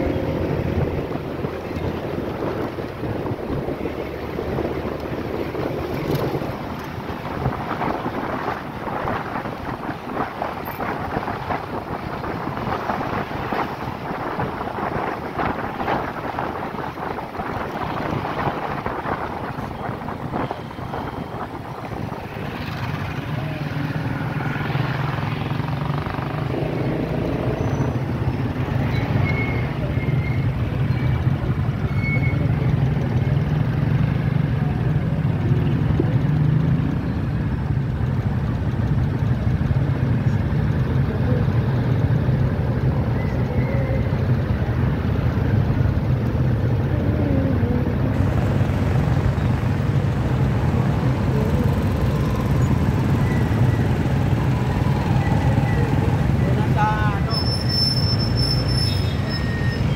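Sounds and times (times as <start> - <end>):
wind on microphone: 0.0 - 24.4
road noise rumble: 0.0 - 59.9
vehicle engine hum: 0.0 - 59.9.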